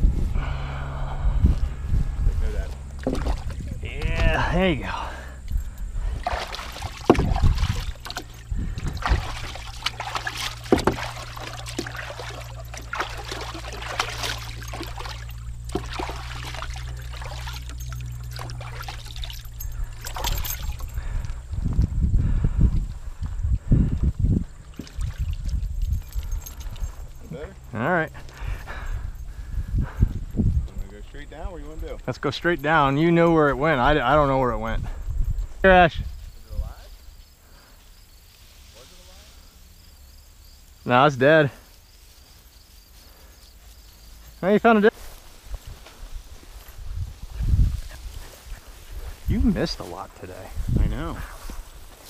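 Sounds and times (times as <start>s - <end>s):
water sloshing in plastic tub: 2.9s - 4.3s, 6.2s - 21.0s, 24.6s - 27.2s.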